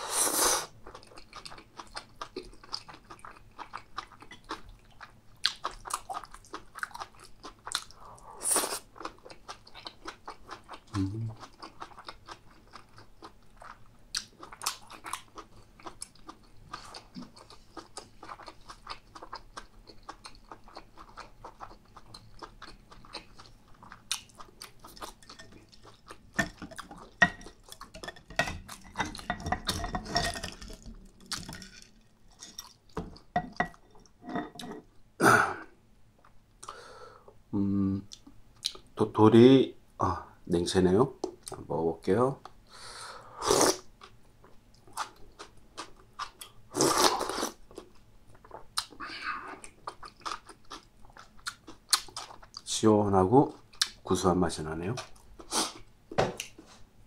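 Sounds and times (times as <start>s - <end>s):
person chewing food: 0.6s - 36.8s, 43.5s - 52.7s, 53.5s - 54.0s.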